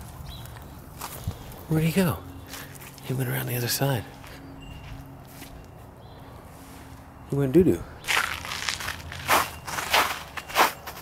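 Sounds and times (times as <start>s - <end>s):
footsteps on snow and grass: 0.0s - 3.2s, 4.0s - 7.2s, 8.0s - 11.0s.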